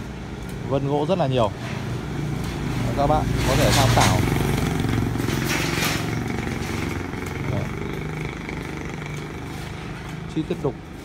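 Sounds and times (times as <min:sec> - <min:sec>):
vehicle engine running: 0:02.4 - 0:11.0.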